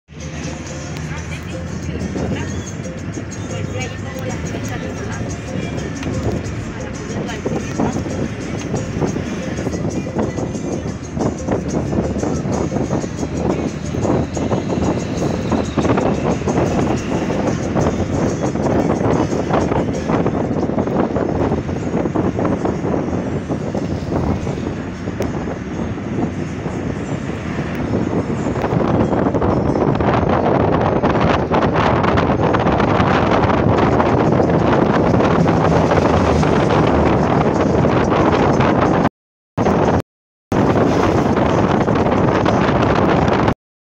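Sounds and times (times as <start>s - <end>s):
car road noise: 0.1s - 43.6s
wind buffeting microphone: 0.3s - 43.6s.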